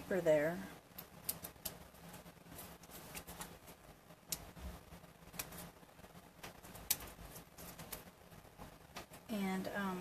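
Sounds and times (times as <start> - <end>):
fingers handling paper: 0.9 - 9.2
paper tool clicks and taps: 6.4 - 7.2.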